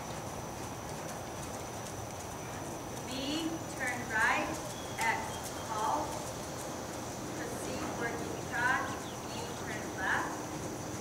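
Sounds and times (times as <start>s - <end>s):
horse hoofbeats on sand: 0.0s - 11.0s.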